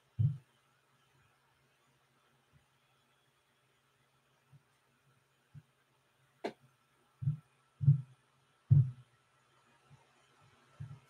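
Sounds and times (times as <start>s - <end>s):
dull low thumps: 7.2s - 9.0s.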